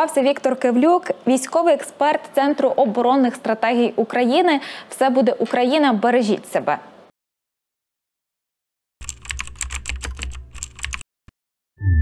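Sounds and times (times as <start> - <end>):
computer keyboard key clicks: 9.0 - 11.0.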